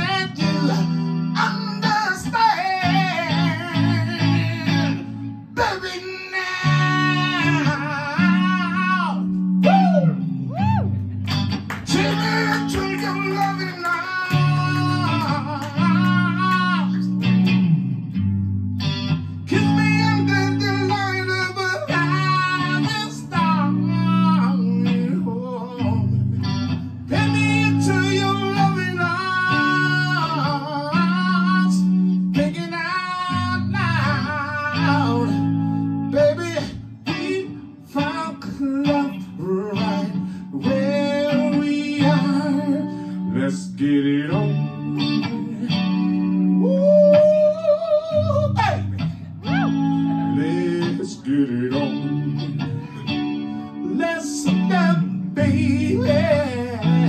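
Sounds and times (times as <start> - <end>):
electric guitar chords: 0.0 - 57.0
man singing wordless runs: 11.8 - 17.0.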